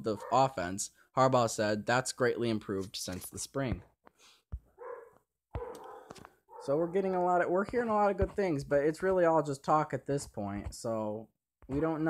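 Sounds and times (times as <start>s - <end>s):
dog barking faintly: 0.1s - 0.6s, 4.8s - 7.0s.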